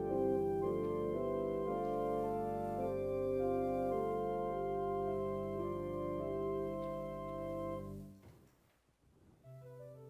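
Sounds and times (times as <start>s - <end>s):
church organ chords: 0.0s - 8.1s.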